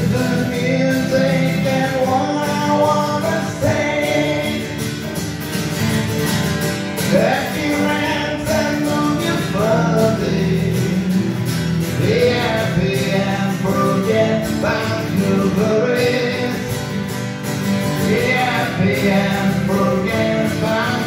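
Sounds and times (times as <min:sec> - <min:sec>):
man singing: 0:00.0 - 0:05.1, 0:07.0 - 0:17.1, 0:17.8 - 0:21.0
acoustic guitars strumming: 0:00.0 - 0:21.0.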